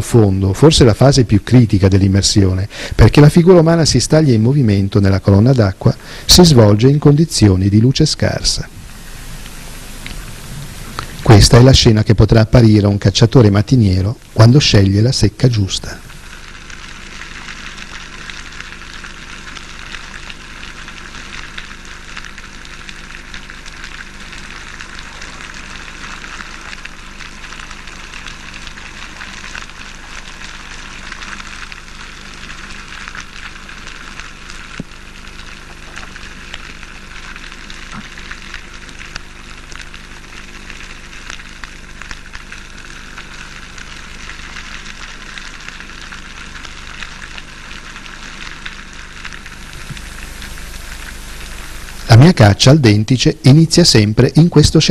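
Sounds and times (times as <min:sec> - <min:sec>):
low steady hum: 0:00.0 - 0:54.9
underwater crackling: 0:00.9 - 0:53.0.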